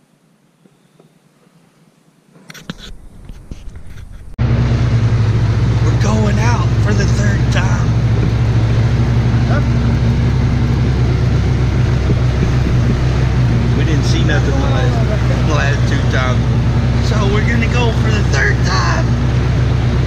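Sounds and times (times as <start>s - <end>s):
utility vehicle engine droning: 2.9s - 20.0s.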